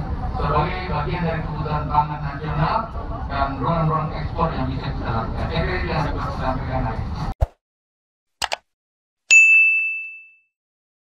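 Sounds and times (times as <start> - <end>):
notification bell ding: 9.3 - 10.6.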